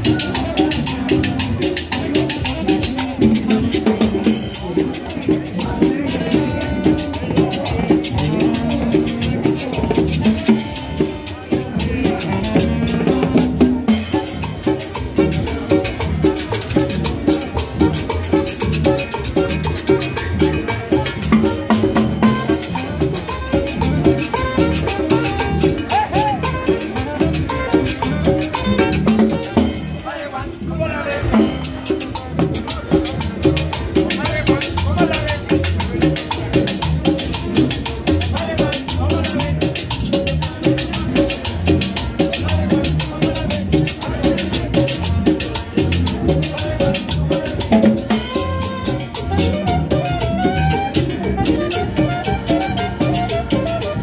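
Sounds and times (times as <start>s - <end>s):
conga drums: 0.0s - 54.0s
double bass: 0.0s - 54.0s.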